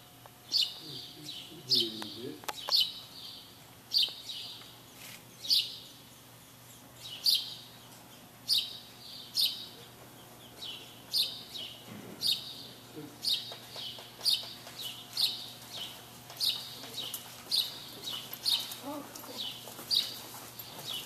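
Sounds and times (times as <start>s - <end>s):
small bird chirping: 0.5s - 20.2s.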